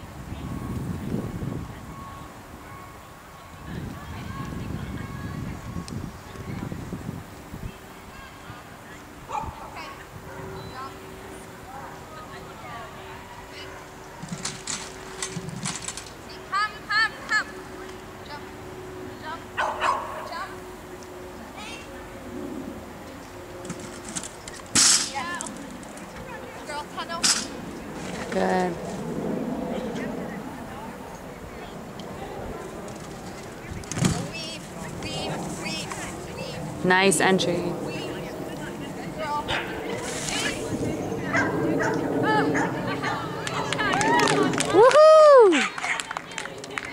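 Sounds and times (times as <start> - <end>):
outdoor crowd noise: 0.0 - 46.9
dog barking: 9.3 - 10.5, 19.6 - 20.3, 41.3 - 42.0.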